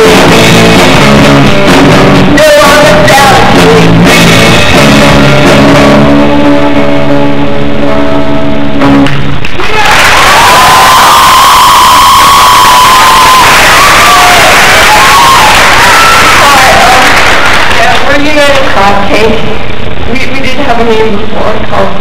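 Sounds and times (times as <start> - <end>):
audience cheering and applauding: 9.4 - 18.9.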